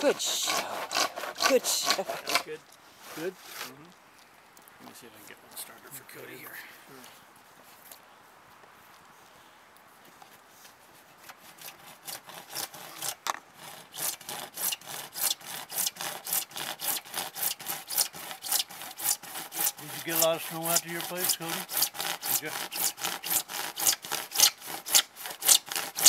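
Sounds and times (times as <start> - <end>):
hand saw cutting plastic pipe: 0.0 - 3.7, 11.2 - 26.0.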